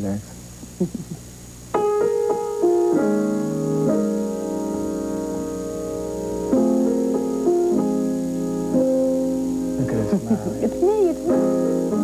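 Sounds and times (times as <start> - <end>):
piano notes: 1.7 - 12.0.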